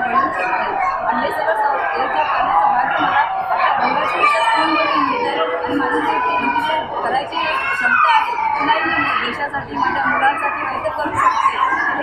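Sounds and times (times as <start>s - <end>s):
chatter of voices: 0.0s - 12.0s
woman talking into microphone: 0.0s - 12.0s.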